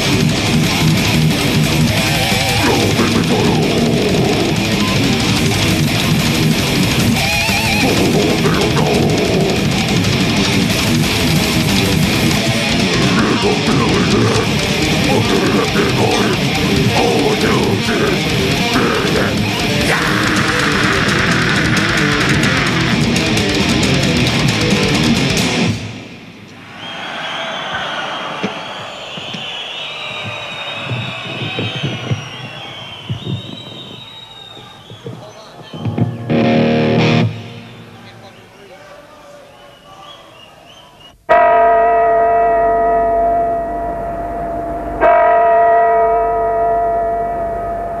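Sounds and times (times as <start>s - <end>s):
death metal band playing live: 0.0s - 26.4s, 35.8s - 38.0s
faint crowd noise: 0.0s - 41.3s
large bell ringing: 41.3s - 48.0s.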